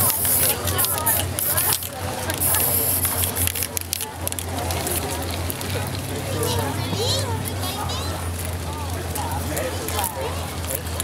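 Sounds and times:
aerosol spray can hissing: 0.0 - 3.6.

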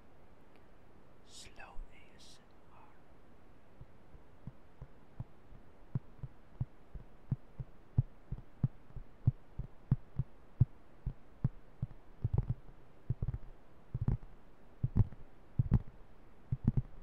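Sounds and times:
fingertips tapping plastic disc: 11.8 - 15.9, 16.5 - 17.0.

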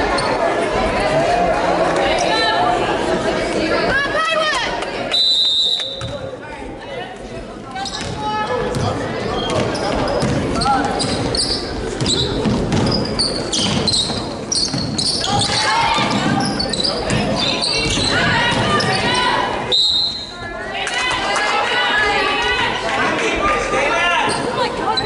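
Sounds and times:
people shouting in a gym: 7.8 - 25.0
basketball bouncing on hardwood floor: 12.0 - 13.0.

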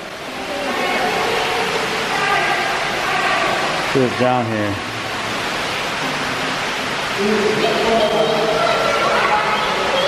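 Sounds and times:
running water and pumps: 0.0 - 10.0
faint voices: 7.1 - 10.0.

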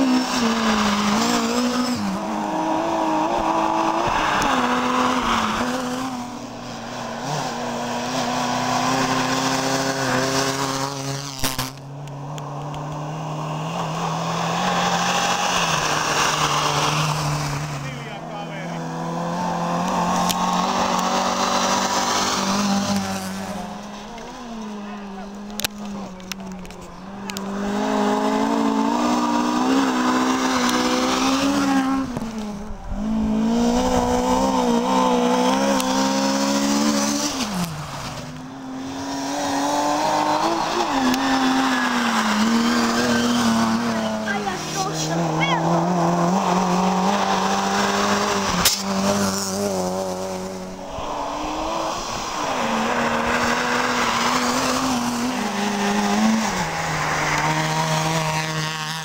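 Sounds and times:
rally car engines revving: 0.0 - 59.0.

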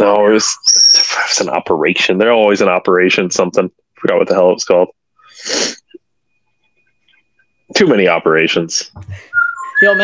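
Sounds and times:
person sneezing: 5.4 - 5.8.

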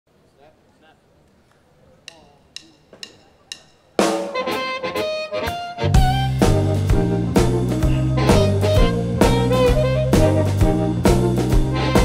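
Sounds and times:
blues band playing: 2.6 - 12.0
blues harmonica held notes: 4.1 - 12.0
heavy bass: 5.8 - 12.0.

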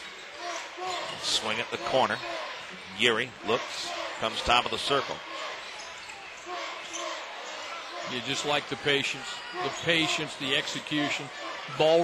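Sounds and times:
crowd noise: 0.0 - 12.0
faint voices in crowd: 0.0 - 12.0.

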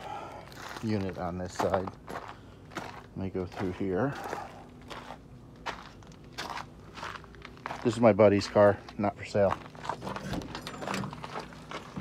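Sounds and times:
footsteps on gravel and rocks: 0.0 - 12.0.

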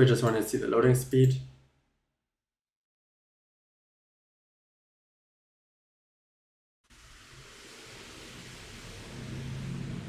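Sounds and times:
low hum: 6.9 - 10.0.

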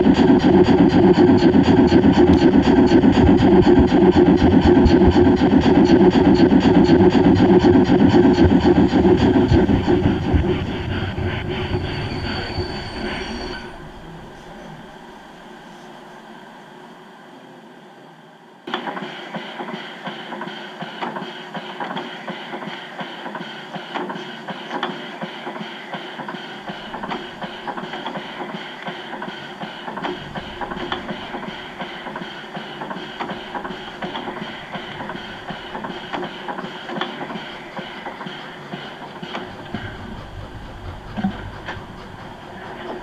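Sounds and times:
low locomotive rumble: 0.0 - 18.2, 24.5 - 43.0
model train hiss and clatter: 18.7 - 43.0.

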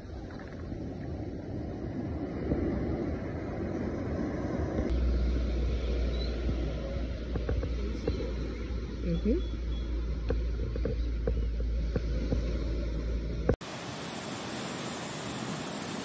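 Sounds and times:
low wind rumble: 0.0 - 16.0.

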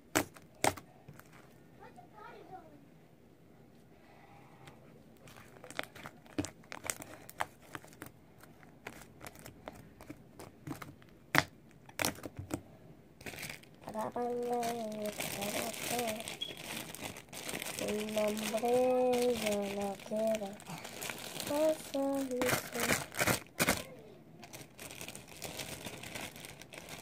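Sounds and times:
girl singing: 13.8 - 16.4, 17.6 - 24.5.

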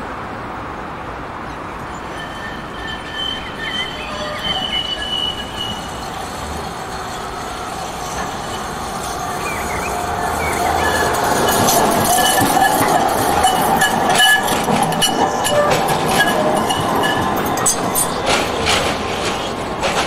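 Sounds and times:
tram running noise and motor hum: 0.0 - 20.0
tram wheels squealing: 1.4 - 20.0.

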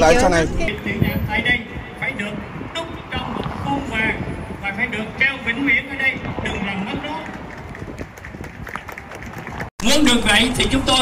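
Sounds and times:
urban background noise: 0.0 - 11.0.

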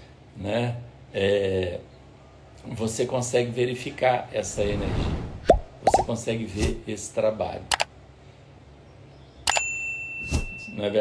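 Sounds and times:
short high bell ding: 9.5 - 10.8.

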